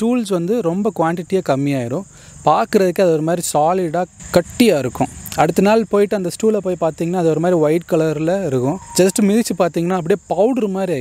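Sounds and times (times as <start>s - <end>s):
crickets chirring: 0.0s - 11.0s
man talking: 0.0s - 11.0s.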